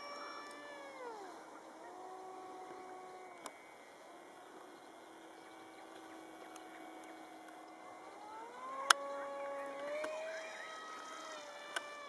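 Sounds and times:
model aircraft motors whining: 0.0 - 12.0.

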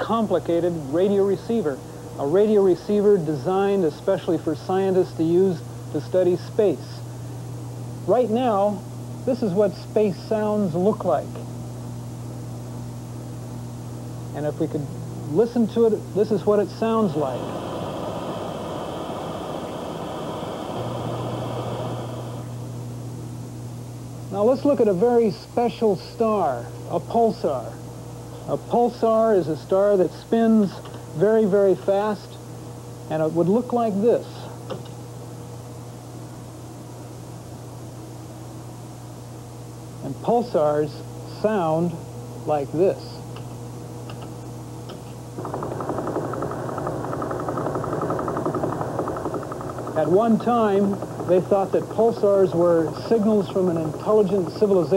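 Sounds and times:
steady low hum: 0.0 - 54.9
radio static hiss: 14.3 - 22.7
rapid train of ticks: 45.4 - 54.6.

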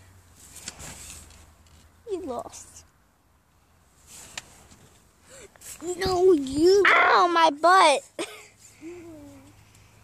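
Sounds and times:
rustling against tent fabric: 0.1 - 2.8, 3.8 - 6.8.

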